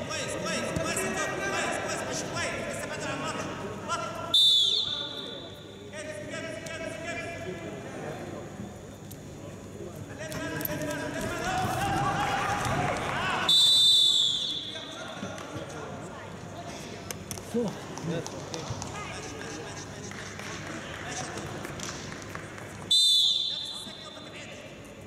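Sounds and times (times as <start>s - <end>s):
referee's whistle blasts: 4.3s - 5.9s, 13.5s - 15.0s, 22.9s - 24.4s
shouts: 11.2s - 14.1s.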